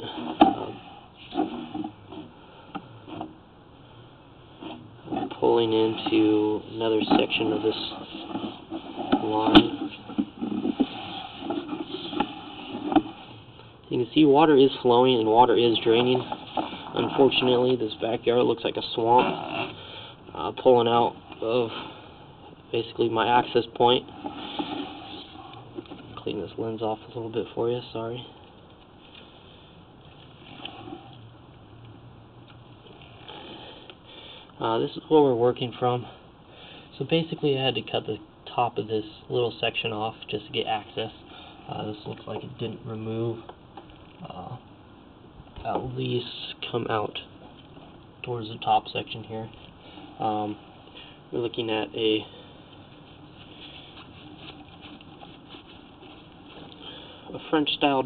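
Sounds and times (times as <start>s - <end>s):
low steady hum: 0.0s - 58.0s
hand rubbing camera lens: 0.1s - 2.4s, 7.0s - 13.5s, 15.8s - 17.7s, 24.1s - 26.1s, 52.8s - 56.8s.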